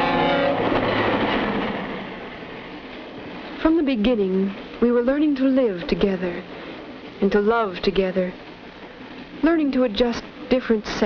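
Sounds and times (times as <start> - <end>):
passenger train rushing past: 0.0 - 9.4.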